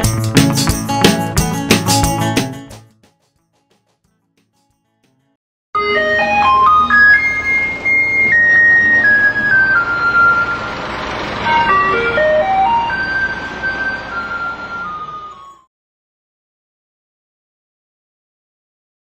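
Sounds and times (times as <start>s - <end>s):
electronic truck jingle: 5.8s - 15.7s.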